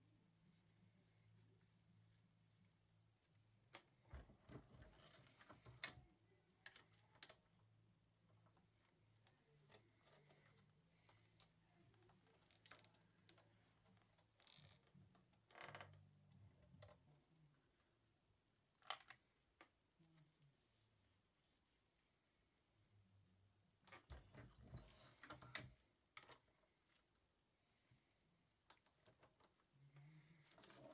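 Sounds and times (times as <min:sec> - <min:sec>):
faint low hum: 0:00.0 - 0:30.9.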